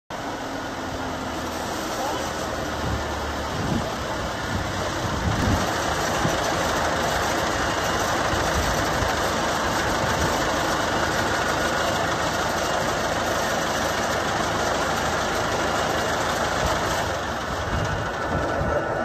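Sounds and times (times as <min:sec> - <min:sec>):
wood chipper diesel engine running: 0:00.1 - 0:19.0.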